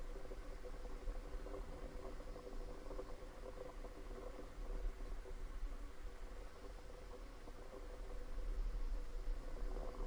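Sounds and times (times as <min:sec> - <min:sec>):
faint hiss and hum: 0:00.0 - 0:10.0.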